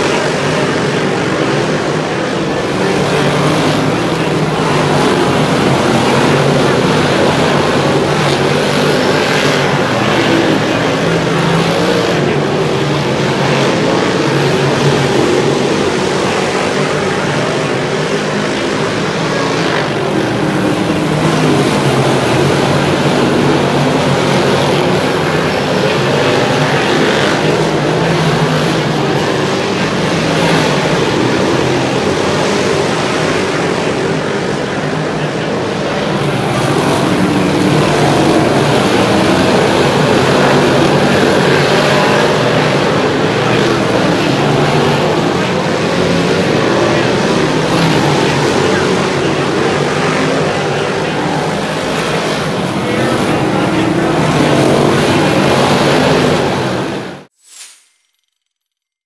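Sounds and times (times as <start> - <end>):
race car engines droning: 0.0 - 57.4.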